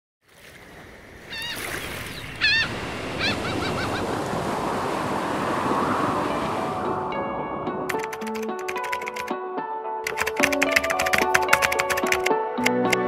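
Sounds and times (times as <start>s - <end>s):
waves washing on shore: 0.2s - 8.2s
wind: 0.2s - 9.3s
bird calling: 1.2s - 6.7s.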